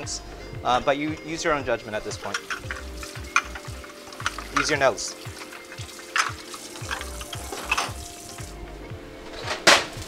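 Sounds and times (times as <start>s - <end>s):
wok clattering: 2.2s - 4.8s, 5.4s - 8.0s.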